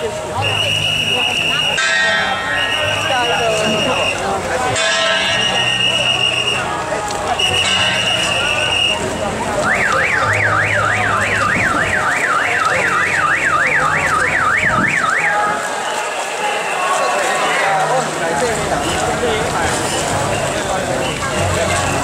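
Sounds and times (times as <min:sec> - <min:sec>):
crowd noise: 0:00.0 - 0:22.0
electronic siren beeping and warbling: 0:09.7 - 0:15.6.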